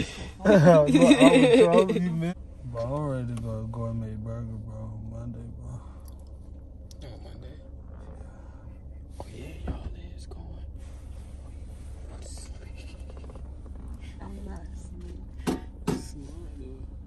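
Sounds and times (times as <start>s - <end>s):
murmured voices: 0.0s - 2.4s
low rumble inside car: 0.0s - 17.0s.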